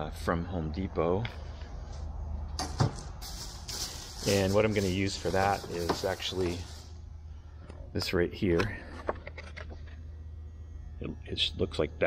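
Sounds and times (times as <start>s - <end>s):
steady low hum: 0.0s - 12.0s
faint rustling handling noise: 3.0s - 7.0s.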